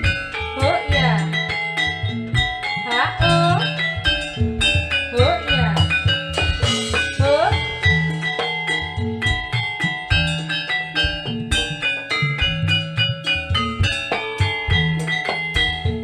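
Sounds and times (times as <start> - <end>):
struck metallophone notes: 0.0 - 16.0.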